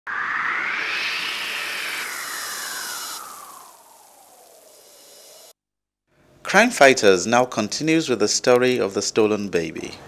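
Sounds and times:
high hiss: 0.1 - 5.5
whoosh sweeping up in pitch: 0.1 - 5.6.

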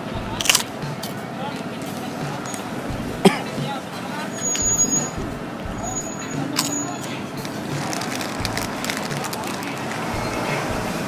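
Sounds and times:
people's voices: 0.0 - 11.0
traffic: 0.0 - 11.0
cracker crunching: 0.4 - 3.4, 6.5 - 10.2.

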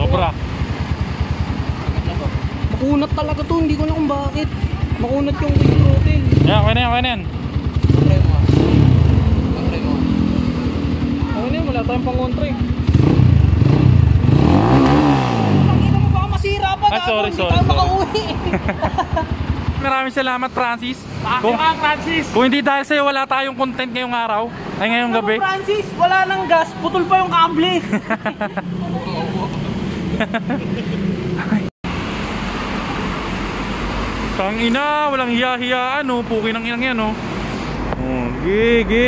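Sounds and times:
motorcycle engine idling and revving: 0.0 - 22.5, 24.5 - 39.0
road noise with deep rumble: 0.0 - 39.0
traffic hum: 0.0 - 39.0.

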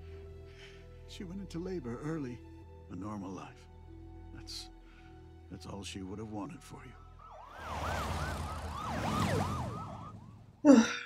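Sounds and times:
sirens yelping: 7.2 - 10.7.

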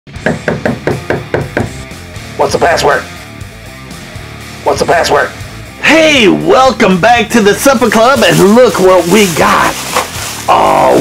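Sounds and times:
knocking on a wooden door: 0.1 - 1.8
background music: 0.1 - 11.0.

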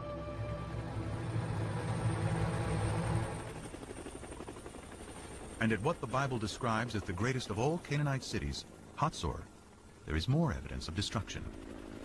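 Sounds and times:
helicopter rotor chopping: 0.6 - 12.0.

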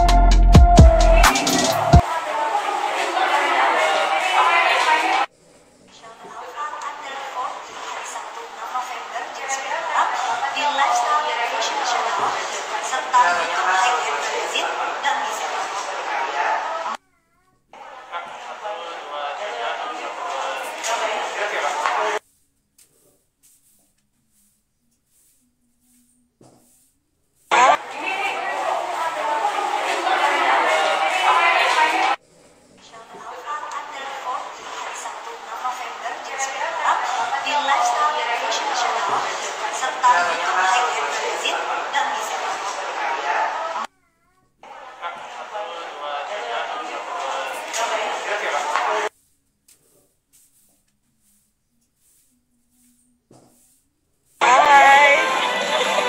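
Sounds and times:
people talking in a room: 0.0 - 56.0
crowd chatter in a hall: 1.0 - 5.4, 6.4 - 17.0, 17.8 - 22.2, 27.5 - 32.2, 33.3 - 43.9, 44.6 - 49.1, 54.4 - 56.0.

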